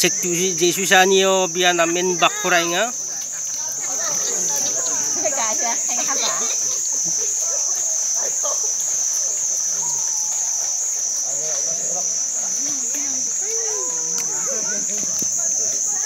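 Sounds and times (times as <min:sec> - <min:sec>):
faint distant voices: 0:00.0 - 0:16.0
pulsing high-pitched insect drone: 0:00.0 - 0:16.0.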